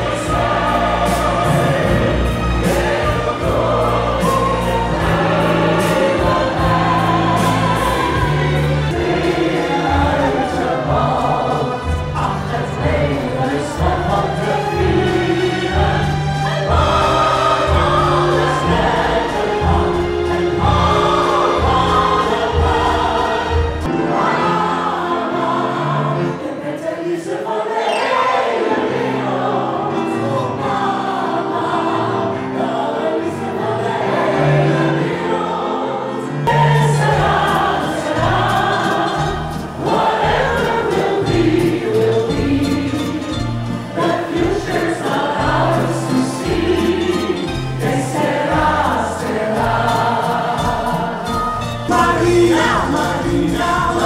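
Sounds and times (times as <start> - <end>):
backing track: 0.0 - 26.5, 36.5 - 54.0
audience singing along: 0.0 - 54.0
singers performing pop: 0.0 - 54.0.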